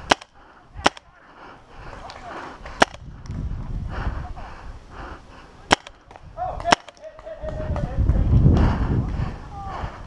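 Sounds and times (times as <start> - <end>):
paintball pistol shots: 0.0 - 1.1, 2.8 - 3.0, 5.7 - 7.2.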